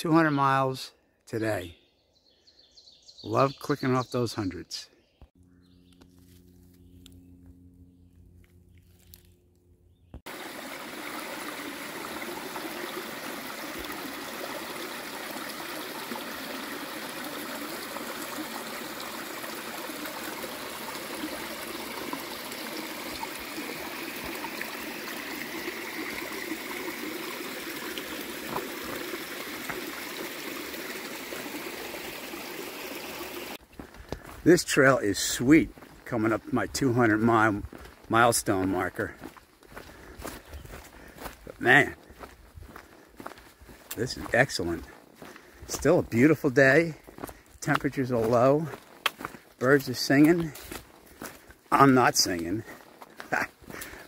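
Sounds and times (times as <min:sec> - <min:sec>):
water trickling over rocks: 0:10.3 - 0:34.9, 0:41.0 - 0:54.0.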